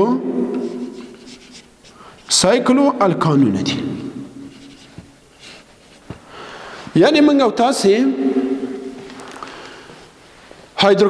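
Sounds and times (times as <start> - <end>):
marker writing on whiteboard: 0.5 - 2.4, 4.3 - 6.3.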